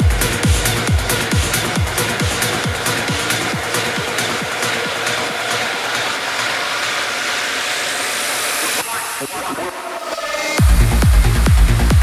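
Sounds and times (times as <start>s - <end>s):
kick drum: 0.0s - 5.4s, 10.6s - 12.0s
trance music: 0.0s - 12.0s.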